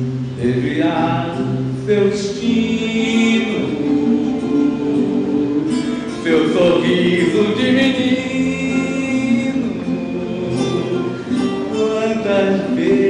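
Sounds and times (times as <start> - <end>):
acoustic guitar: 0.0 - 13.0
person singing slow song: 0.0 - 13.0.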